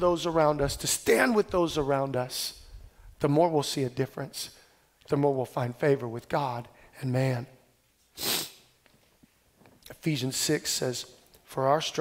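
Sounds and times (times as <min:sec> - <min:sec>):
sharp breath into microphone: 0:08.2 - 0:08.7.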